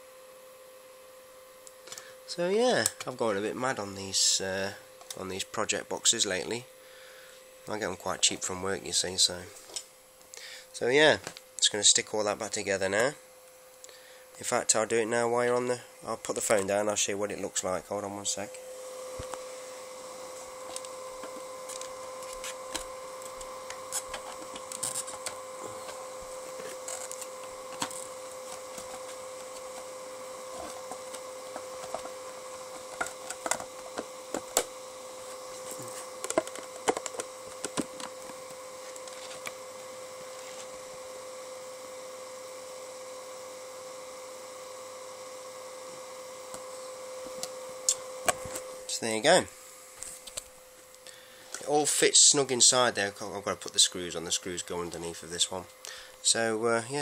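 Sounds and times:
steady electrical hum: 0.0 - 57.0.

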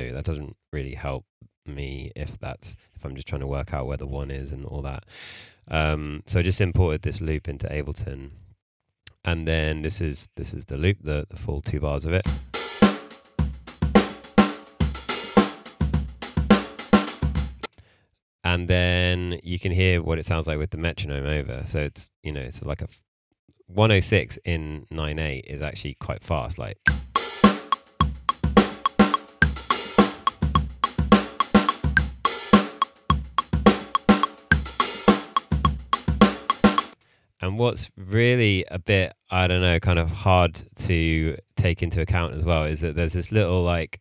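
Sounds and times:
drum kit groove: 12.3 - 17.7, 26.9 - 37.0
metronome clicking: 26.9 - 37.0.

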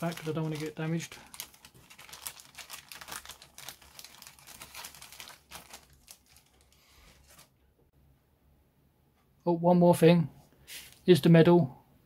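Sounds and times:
plastic bag crinkling: 0.0 - 7.5.

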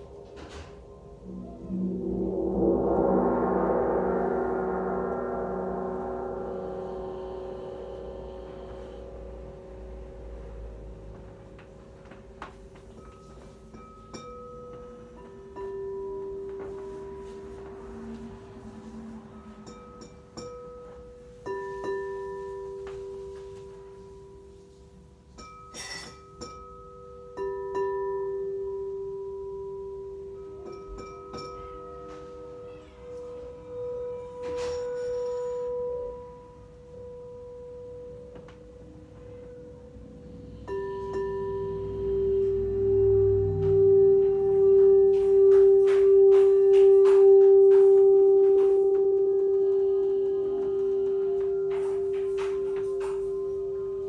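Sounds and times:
low pulsing bowl tone: 0.0 - 54.0
singing bowls ringing: 0.0 - 54.0.

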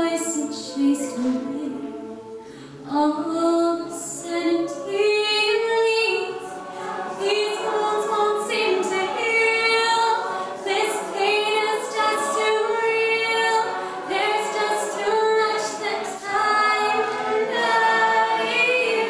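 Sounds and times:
choir singing held notes: 0.0 - 19.0.

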